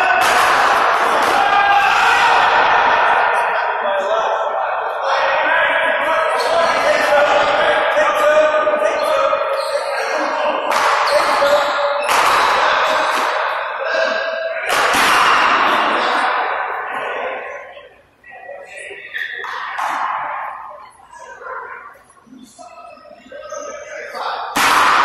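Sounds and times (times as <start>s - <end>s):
paddleball hits echoing: 24.5s - 25.0s.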